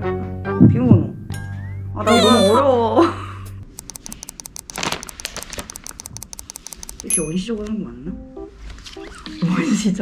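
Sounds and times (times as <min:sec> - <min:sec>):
fingers tapping smartphone screen: 0:03.7 - 0:07.2.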